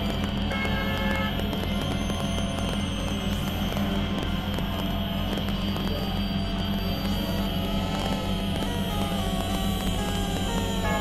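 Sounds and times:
crackling noisy texture: 0.0s - 11.0s
synthesizer drone: 0.0s - 11.0s.

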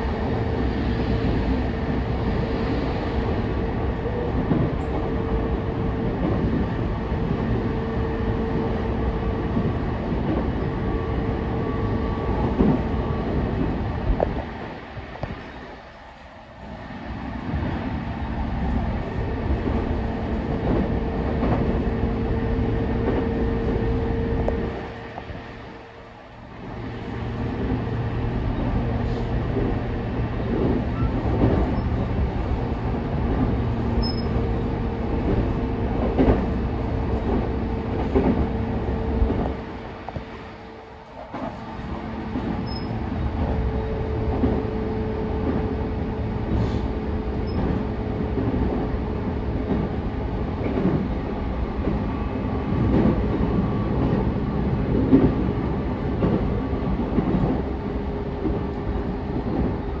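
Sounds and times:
steady train hum: 0.0s - 60.0s
train wheels rumbling on rail: 0.0s - 60.0s.

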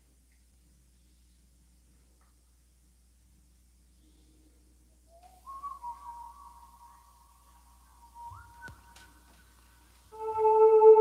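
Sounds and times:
high whistle-like tones: 5.1s - 11.0s.

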